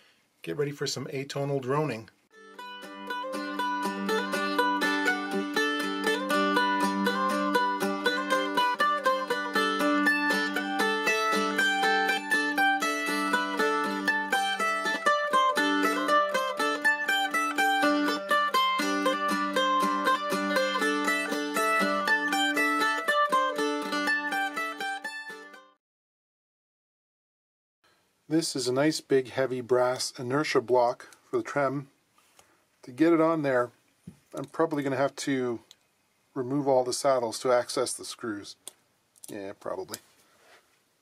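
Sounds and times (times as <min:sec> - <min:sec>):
mandolin tremolo strumming: 0:02.4 - 0:25.6.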